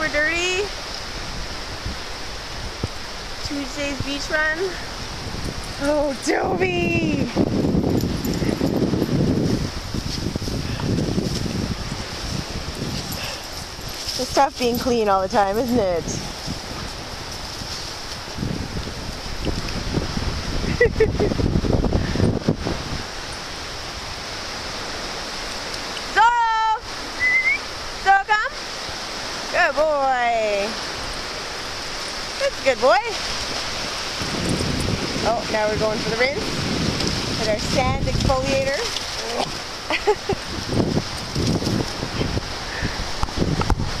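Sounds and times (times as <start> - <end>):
wind: 0.0 - 44.0
small waves on pebbles: 22.8 - 43.2.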